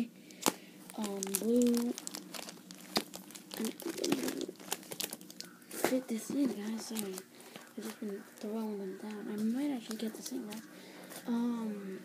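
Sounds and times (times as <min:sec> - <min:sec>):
plastic card sleeves crinkling: 0:00.3 - 0:10.7.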